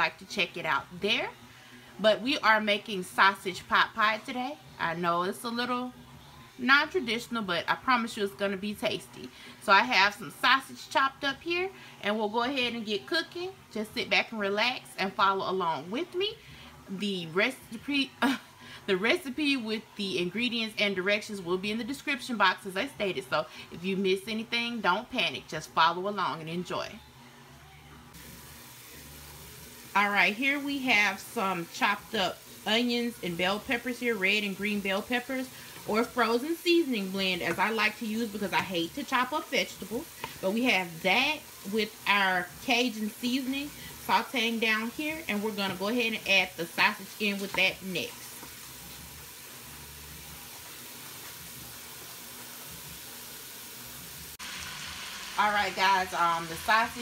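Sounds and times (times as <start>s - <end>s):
vegetables sizzling in a pot: 0.0s - 27.4s, 28.0s - 57.0s.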